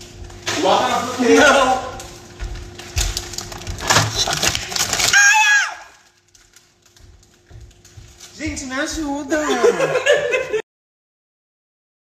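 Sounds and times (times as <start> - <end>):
plastic bag crinkling: 0.1 - 9.7.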